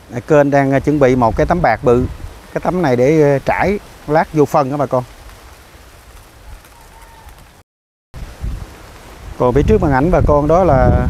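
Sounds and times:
faint outdoor hiss: 0.0 - 7.6, 8.2 - 11.0
wind rumble on microphone: 0.1 - 4.3, 8.2 - 11.0.

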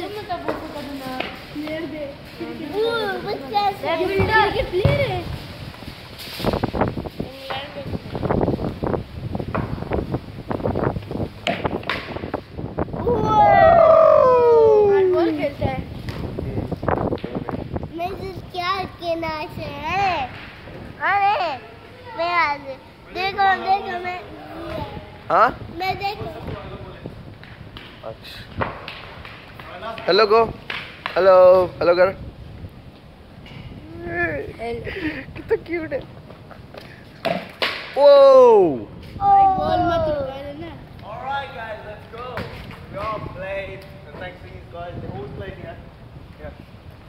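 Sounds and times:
children chattering and calling: 0.0 - 5.5, 13.0 - 15.9, 17.8 - 26.8, 39.2 - 41.0
outdoor background noise: 0.0 - 47.0.

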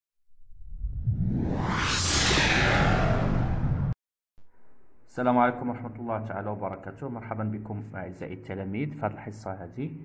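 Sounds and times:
low rumble: 0.4 - 4.0
whoosh: 0.4 - 4.0.

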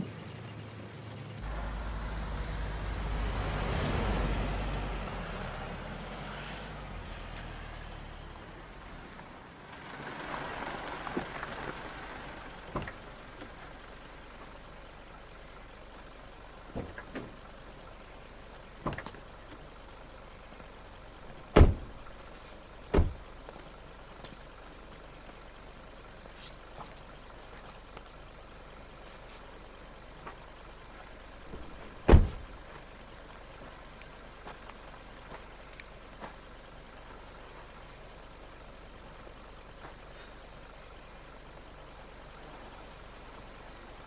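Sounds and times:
motor vehicle passing: 1.4 - 13.2
sharp knocks or thuds: 31.5 - 32.5.

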